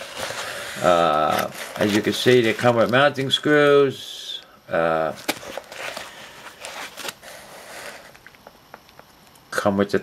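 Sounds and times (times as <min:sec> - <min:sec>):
plastic bag rustling: 0:00.0 - 0:03.4.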